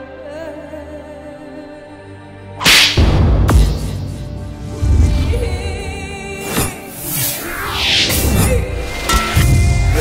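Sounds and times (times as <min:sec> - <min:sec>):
sharp whip-like crack: 0:02.6 - 0:03.1.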